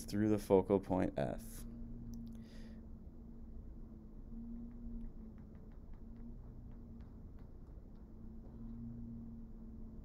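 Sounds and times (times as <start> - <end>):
faint low hum: 0.0 - 10.0
stylus ticking on tablet screen: 4.4 - 9.1.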